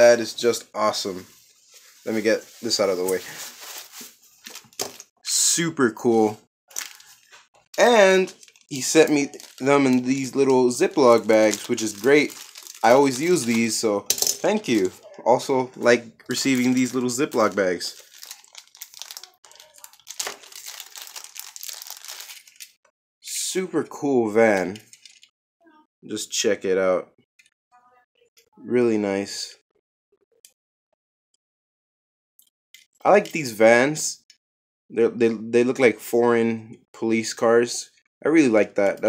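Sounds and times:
plastic bag crinkling: 1.7 - 5.1, 6.7 - 22.8.

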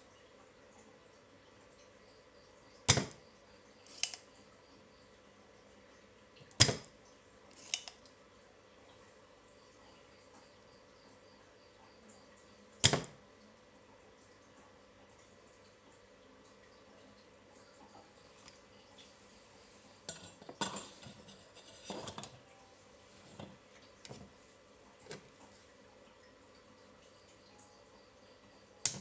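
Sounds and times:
desoldering pump snapping: 2.9 - 3.2, 3.9 - 4.2, 6.5 - 6.9, 7.5 - 8.1, 12.8 - 13.2.

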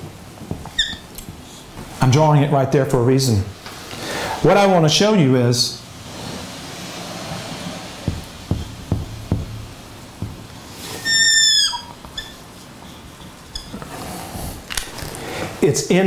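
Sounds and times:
marker squeaking on whiteboard: 0.6 - 1.2, 10.8 - 12.6, 13.5 - 13.9
marker tapping on whiteboard: 8.0 - 9.6, 10.2 - 10.5.

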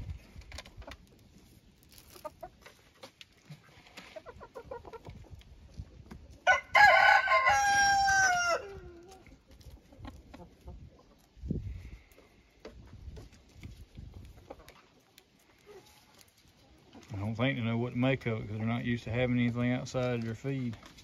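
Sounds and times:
chickens clucking softly: 2.1 - 6.5, 8.1 - 17.5
rooster crowing: 6.5 - 8.8.

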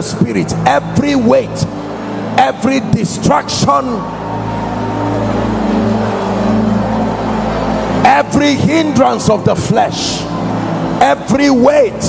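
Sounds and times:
congregation praying aloud: 0.0 - 12.0
keyboard pad chords: 0.0 - 12.0.

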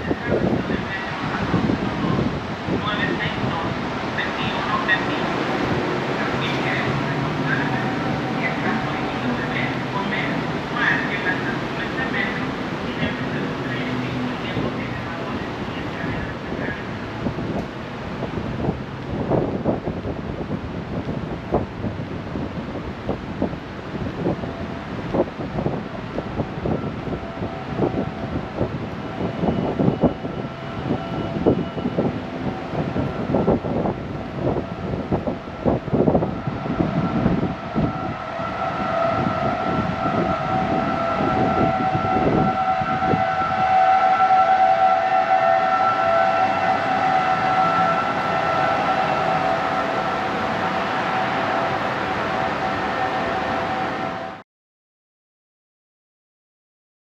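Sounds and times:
wind buffeting microphone: 0.0 - 54.4.

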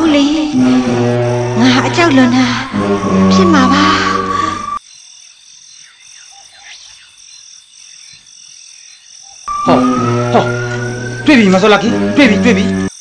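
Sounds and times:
background music: 0.0 - 4.8, 9.5 - 12.9
frogs calling: 0.0 - 13.0.

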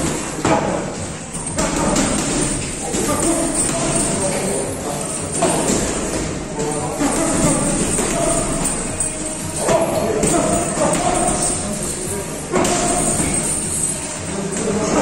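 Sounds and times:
boxing gloves thudding: 0.0 - 14.0
background music: 0.0 - 15.0
voices: 1.0 - 15.0.

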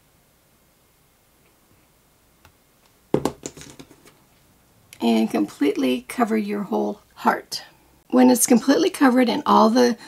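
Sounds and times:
sharp knock on tabletop: 3.1 - 3.9.

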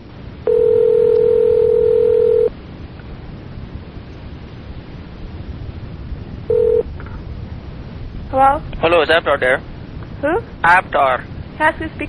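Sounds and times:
phone line hiss: 0.4 - 2.5, 6.5 - 7.0
telephone ringback tone: 0.5 - 2.5, 6.5 - 6.9.

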